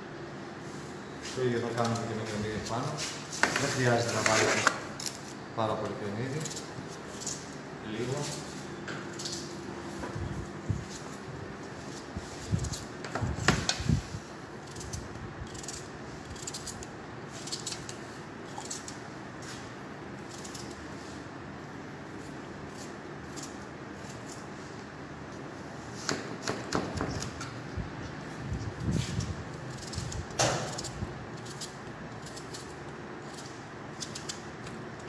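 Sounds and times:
steady low hum: 0.0s - 35.0s
knife cutting onion: 11.8s - 19.6s, 28.6s - 34.6s.

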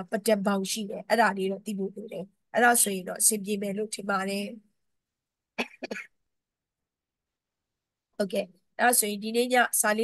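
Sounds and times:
woman coughing into tissue: 5.6s - 6.2s.

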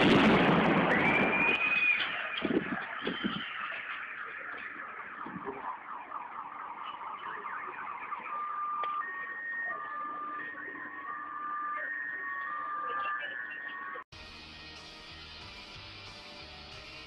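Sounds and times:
rustling crackling background noise: 0.0s - 11.4s
two-tone electronic warning signal: 6.7s - 14.1s.

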